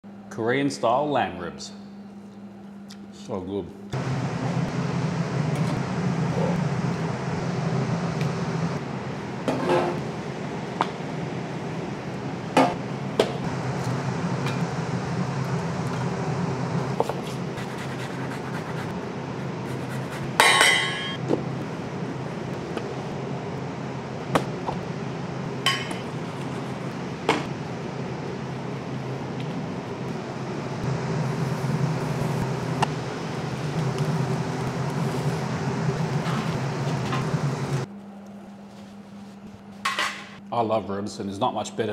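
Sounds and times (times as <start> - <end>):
steady low rumble: 3.9 - 20.4, 21.0 - 37.9.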